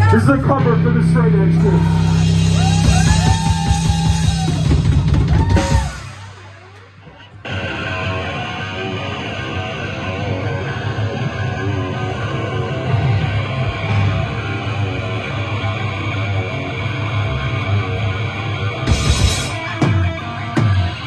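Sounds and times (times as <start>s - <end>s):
rock band playing loud: 0.0s - 21.0s.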